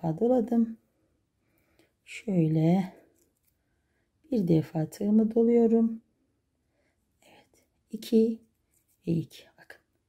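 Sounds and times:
woman speaking: 0.0s - 0.8s, 2.1s - 3.1s, 4.3s - 6.0s, 7.3s - 8.4s, 9.0s - 9.8s
woman whispering: 7.2s - 8.4s, 9.0s - 10.0s.

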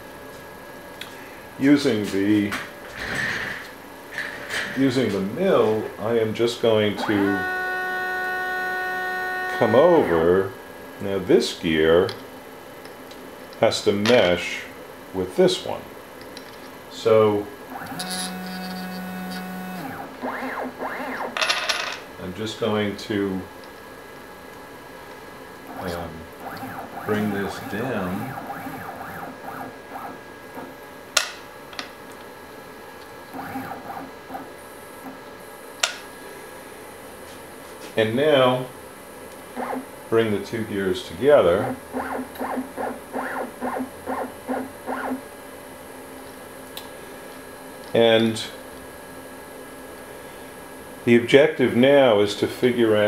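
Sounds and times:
quiet hum: 0.0s - 53.0s
stepper motor whine: 6.8s - 10.5s, 17.7s - 21.4s, 25.7s - 30.7s
motor low hum: 17.4s - 21.4s, 23.7s - 31.0s, 33.0s - 35.8s, 41.6s - 45.3s.

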